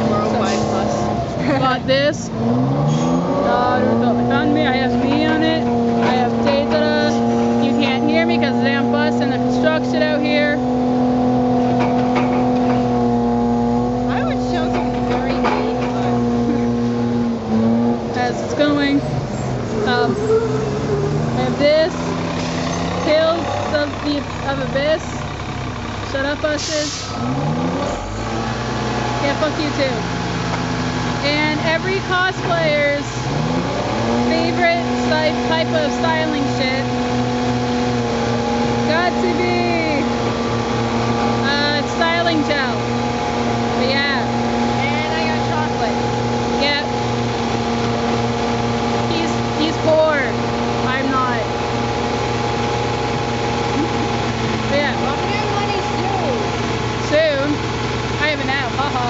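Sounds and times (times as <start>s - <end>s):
person speaking: 0.0s - 2.3s, 3.3s - 10.5s, 18.2s - 19.1s, 53.7s - 57.6s
engine humming steadily: 0.0s - 59.0s
outdoor traffic noise: 0.0s - 59.0s.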